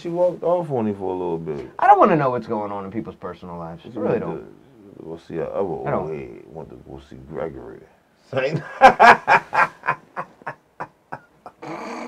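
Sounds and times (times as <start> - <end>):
man laughing hard: 8.6 - 11.6.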